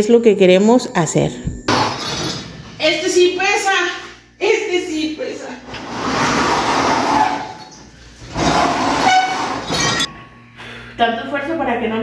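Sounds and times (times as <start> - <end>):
heavy furniture scraping across floor: 5.7 - 10.1
short squeal: 6.5 - 10.1
glassware rattling and clinking: 9.5 - 10.1.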